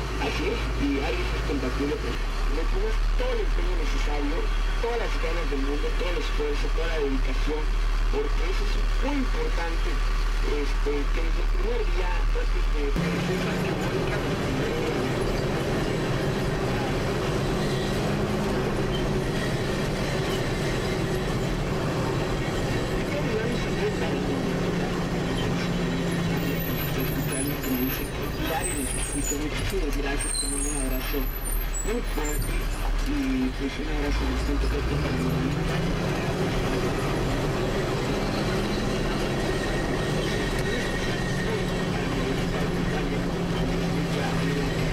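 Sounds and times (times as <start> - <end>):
vehicle engine and road rumble: 0.0 - 44.9.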